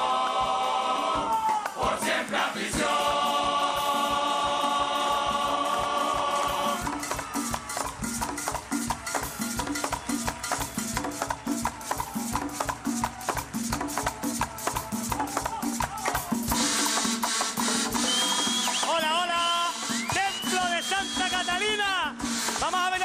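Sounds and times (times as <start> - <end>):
crowd cheering: 0.0 - 17.2, 17.8 - 23.0
drums and shakers rhythm: 0.0 - 23.0.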